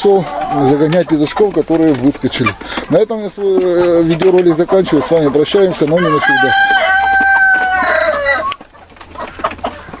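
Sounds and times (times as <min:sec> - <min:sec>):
chickens clucking: 0:00.0 - 0:10.0
rooster crowing: 0:06.0 - 0:08.6.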